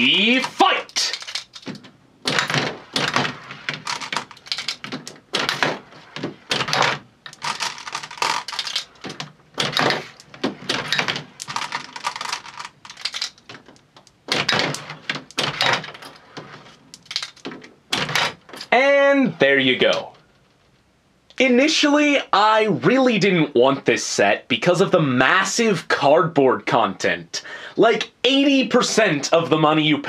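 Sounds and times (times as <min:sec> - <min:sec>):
marbles clicking and clattering: 0:00.4 - 0:05.7, 0:06.5 - 0:16.2, 0:16.9 - 0:17.5.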